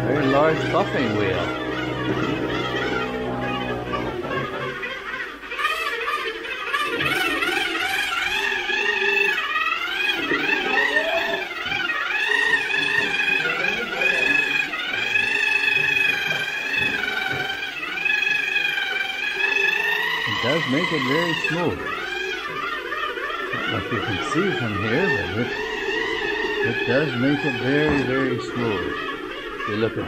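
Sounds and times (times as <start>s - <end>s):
plaster float machine whining: 0.0s - 30.0s.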